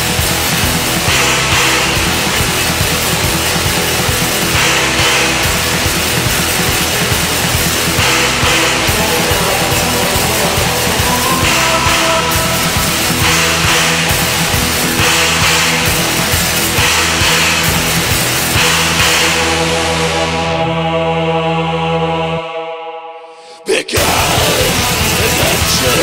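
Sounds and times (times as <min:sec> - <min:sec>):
drums: 0:00.0 - 0:20.6, 0:24.0 - 0:26.0
distorted guitars: 0:00.0 - 0:21.9, 0:23.7 - 0:26.0.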